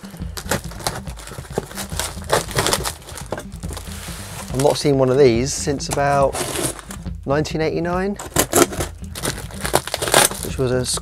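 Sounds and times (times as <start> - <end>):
plastic wrap crinkling: 0.4 - 4.8, 8.3 - 10.6.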